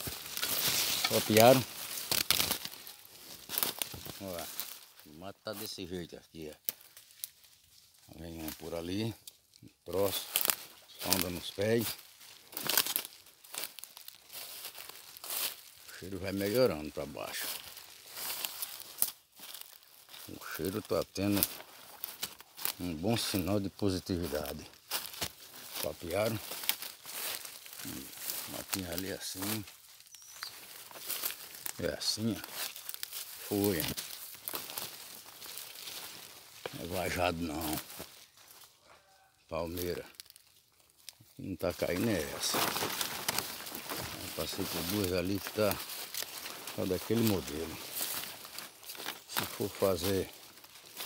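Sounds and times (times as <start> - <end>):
footsteps rustling through dry leaves: 0.0 - 51.0
man speaking: 1.0 - 1.7, 4.1 - 6.6, 8.1 - 10.3, 10.9 - 12.0, 15.9 - 17.6, 20.2 - 21.6, 22.7 - 24.7, 25.8 - 26.5, 27.8 - 29.7, 31.7 - 32.6, 33.4 - 34.0, 36.7 - 37.9, 39.5 - 40.1, 41.4 - 42.8, 44.0 - 45.9, 46.7 - 47.9, 49.3 - 50.4.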